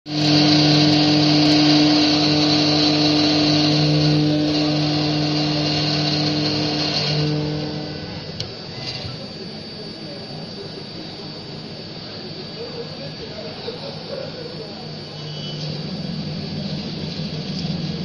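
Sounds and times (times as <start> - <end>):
milling machine whine: 0.0 - 18.0
end mill cutting metal hiss: 0.1 - 9.4.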